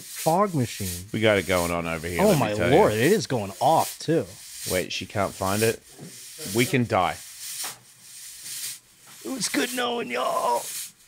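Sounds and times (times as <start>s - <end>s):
fog machine hissing: 0.0s - 11.0s.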